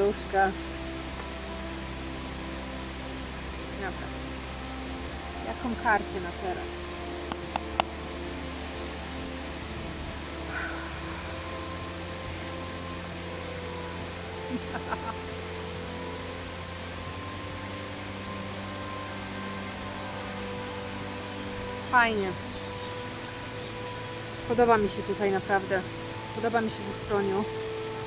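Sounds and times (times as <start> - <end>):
water rushing at a weir: 0.0 - 28.0
soft laugh: 14.5 - 15.2.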